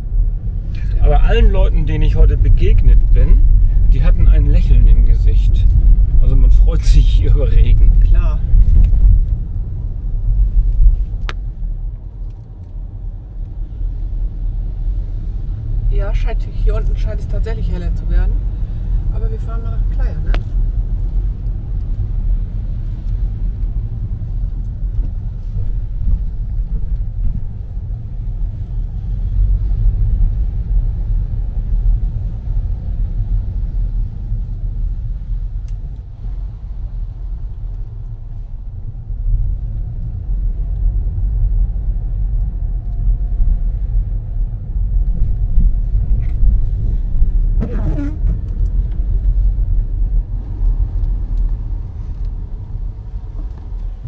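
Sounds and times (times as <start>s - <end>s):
car driving rumble inside cabin: 0.0s - 54.0s
short sound: 47.6s - 48.5s.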